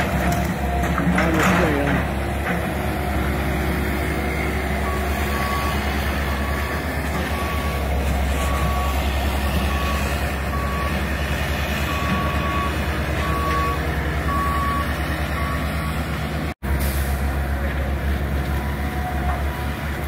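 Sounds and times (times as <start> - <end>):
diesel excavator engines running: 0.0 - 20.0
backup alarm beeping: 4.8 - 7.8, 11.9 - 16.0.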